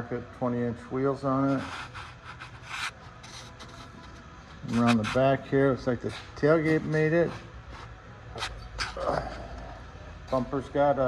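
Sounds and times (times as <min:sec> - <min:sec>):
phone scuffing and rubbing: 0:01.4 - 0:05.4.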